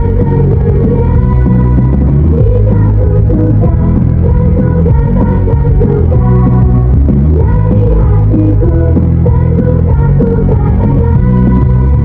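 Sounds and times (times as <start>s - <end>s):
muffled pop song: 0.0s - 12.0s.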